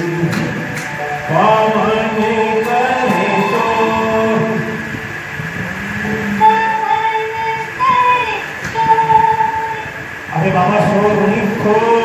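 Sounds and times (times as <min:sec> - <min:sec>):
man singing into a microphone: 0:01.2 - 0:05.0, 0:10.3 - 0:12.0.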